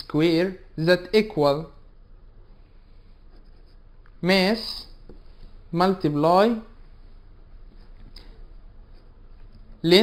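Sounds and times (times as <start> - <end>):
pen scratching on paper: 3.0 - 3.9.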